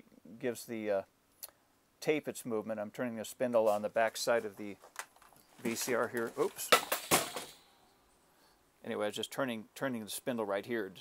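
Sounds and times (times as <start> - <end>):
rattle of handling knocks: 4.9 - 7.6.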